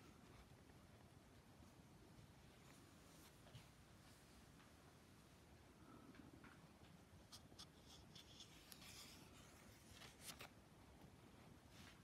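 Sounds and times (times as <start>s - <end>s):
paper page rustling: 7.3s - 10.6s.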